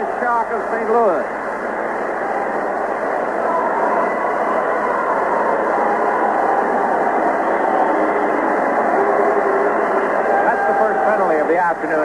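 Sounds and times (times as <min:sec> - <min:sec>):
arena crowd hubbub: 0:00.0 - 0:12.0.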